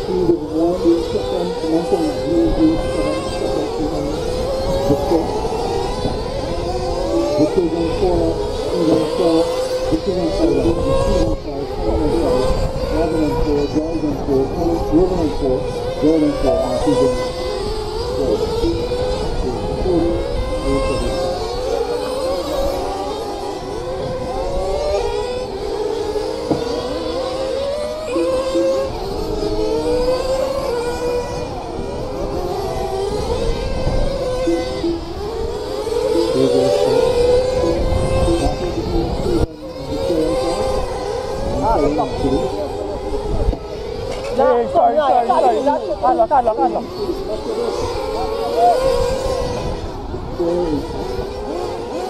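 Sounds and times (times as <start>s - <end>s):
radio-controlled car motors whining: 0.0s - 52.0s.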